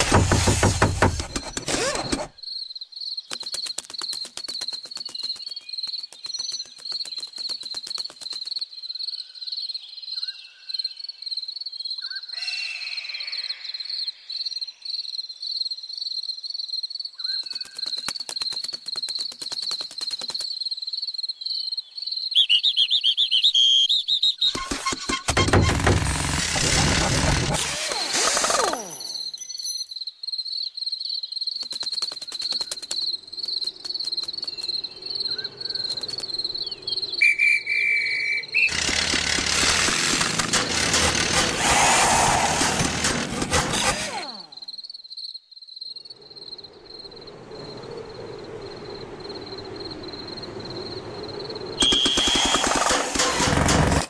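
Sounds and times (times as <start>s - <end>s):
loud noisy bursts: 25.3s - 28.6s, 38.7s - 44.2s, 51.8s - 54.0s
rattling clicks: 38.7s - 44.1s.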